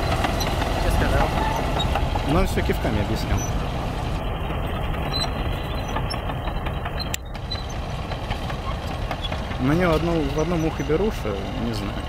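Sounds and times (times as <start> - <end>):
bulldozer diesel engine under load: 0.0 - 12.0.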